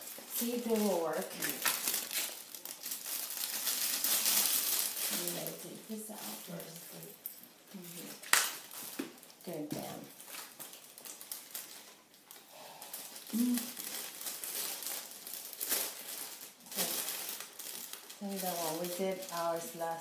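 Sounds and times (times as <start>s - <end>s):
plastic bags crinkling: 0.0s - 20.0s.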